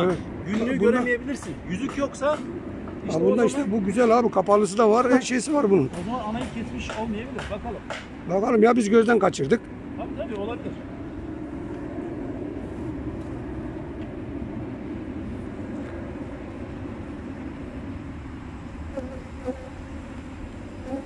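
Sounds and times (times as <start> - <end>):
honeybees buzzing: 18.6 - 21.0.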